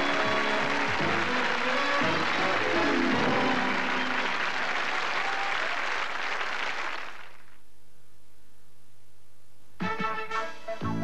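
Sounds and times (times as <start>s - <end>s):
closing music: 0.0s - 4.9s
studio audience applauding: 0.0s - 7.6s
faint low hum: 6.9s - 9.8s.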